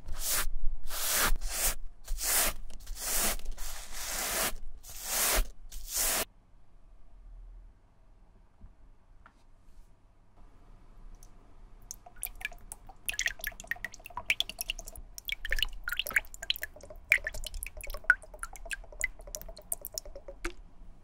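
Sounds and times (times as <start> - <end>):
water dripping into tub: 11.2 - 20.7.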